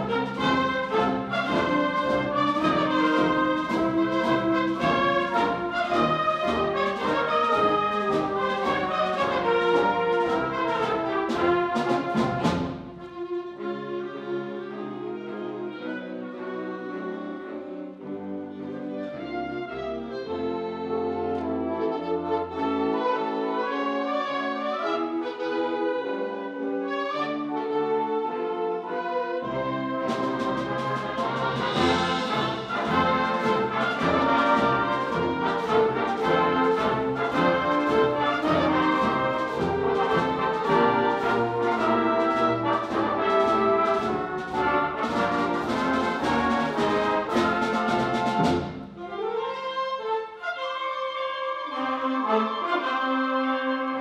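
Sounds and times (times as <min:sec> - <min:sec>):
drums and cymbals: 0:00.0 - 0:13.1, 0:30.1 - 0:49.0
concert band playing a march: 0:00.0 - 0:54.0.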